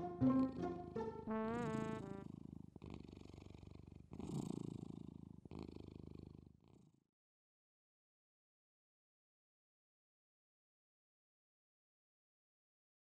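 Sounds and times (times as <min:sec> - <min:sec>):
short wavering musical note: 0:00.0 - 0:02.2
cartoon tiger purring: 0:01.4 - 0:07.0.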